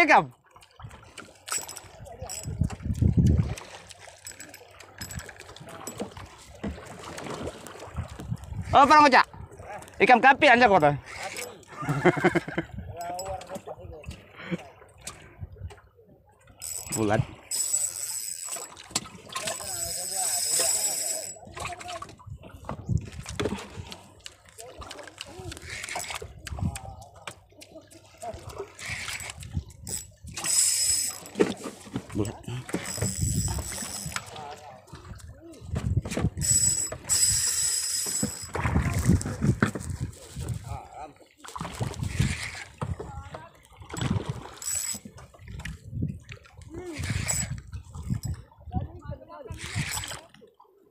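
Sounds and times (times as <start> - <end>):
fishing reel mechanism whirring: 11.0 - 11.7, 16.5 - 18.8, 19.4 - 21.5, 25.5 - 26.3, 28.8 - 31.4, 32.7 - 34.4, 36.3 - 38.6, 42.0 - 42.7, 43.9 - 45.1, 46.8 - 47.6, 49.5 - 50.2.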